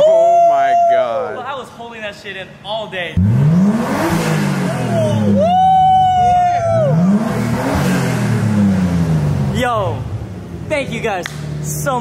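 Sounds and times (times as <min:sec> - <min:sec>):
person whooping: 0:00.0 - 0:01.4, 0:04.7 - 0:07.1
car engine revving: 0:03.1 - 0:12.0.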